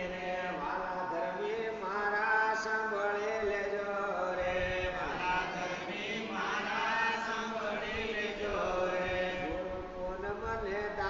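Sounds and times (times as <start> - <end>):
voices chanting: 5.0 - 9.4.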